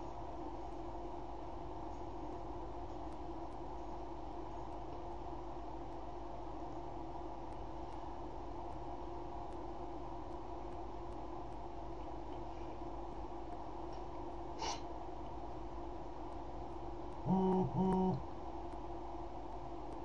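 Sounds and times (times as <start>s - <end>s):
steady hiss: 0.0s - 17.3s
background hum: 0.0s - 20.0s.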